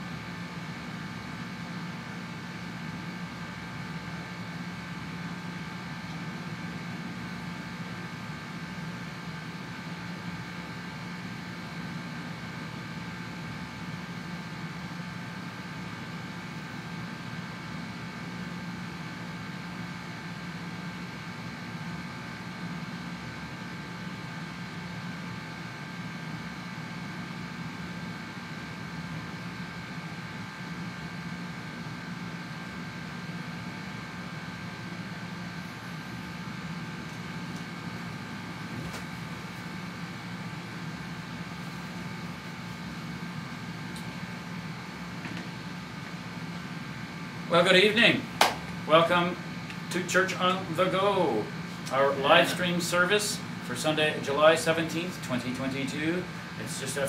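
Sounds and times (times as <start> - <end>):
room hum and hiss: 0.0 - 57.0.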